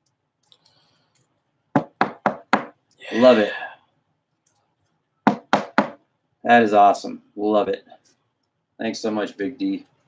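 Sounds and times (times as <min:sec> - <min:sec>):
knocks on hard surface: 0:01.7 - 0:02.8, 0:05.2 - 0:06.0.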